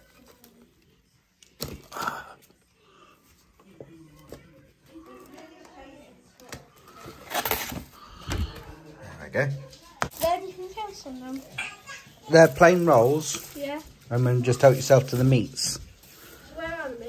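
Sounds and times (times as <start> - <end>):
faint conversation: 0.0 - 17.0
food packaging rustling: 10.1 - 17.0.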